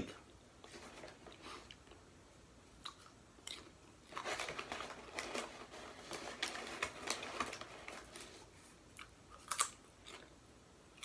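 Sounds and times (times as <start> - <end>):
popcorn being chewed: 2.8 - 11.0
popcorn bag crinkling: 4.1 - 8.5.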